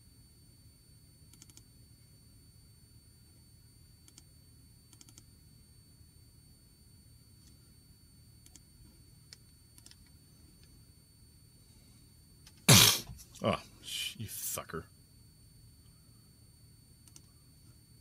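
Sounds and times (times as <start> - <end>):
man shouting: 13.4 - 14.8.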